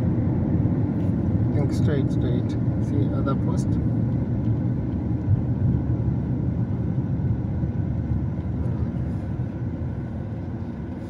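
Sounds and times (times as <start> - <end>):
engine and tyre rumble: 0.0 - 11.0.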